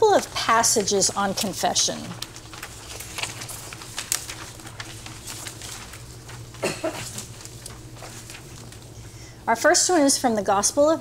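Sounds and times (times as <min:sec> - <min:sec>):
paper rustling: 0:00.0 - 0:09.4
low room hum: 0:00.0 - 0:11.0.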